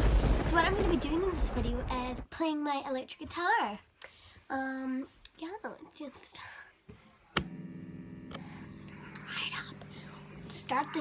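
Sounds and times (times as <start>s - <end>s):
guitar amplifier buzzing hum: 7.4s - 11.0s
person whispering: 8.9s - 11.0s.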